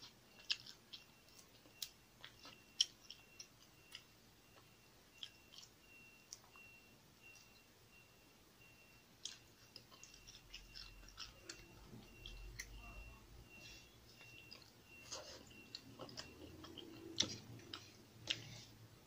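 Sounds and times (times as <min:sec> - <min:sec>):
chewing: 0:00.0 - 0:07.7, 0:09.2 - 0:18.8.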